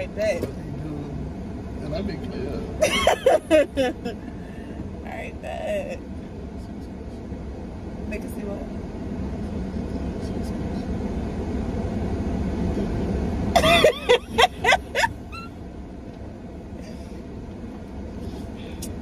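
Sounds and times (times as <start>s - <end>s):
car running inside cabin: 0.0s - 19.0s
people laughing loudly: 2.8s - 4.2s, 13.6s - 15.1s.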